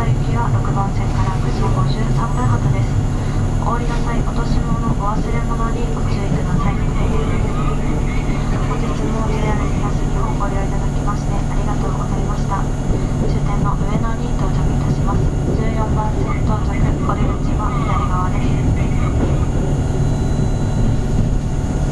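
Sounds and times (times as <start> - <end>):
indistinct voices: 0.0 - 21.9
train interior hum: 0.0 - 21.9.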